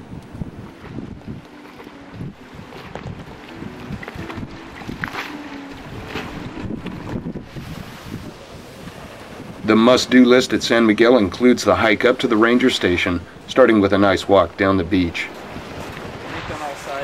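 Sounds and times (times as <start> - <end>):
choppy sea wash: 0.0 - 17.0
gusty wind on microphone: 0.0 - 17.0.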